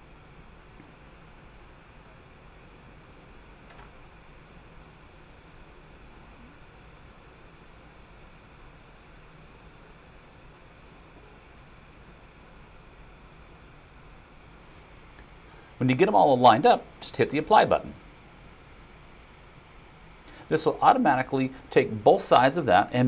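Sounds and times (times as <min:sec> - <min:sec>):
faint room tone hiss: 0:00.0 - 0:23.0.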